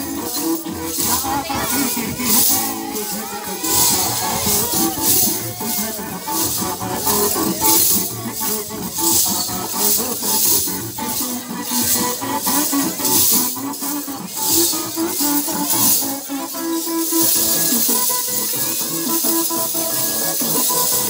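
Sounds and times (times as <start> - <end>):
recorded song: 0.0 - 21.0.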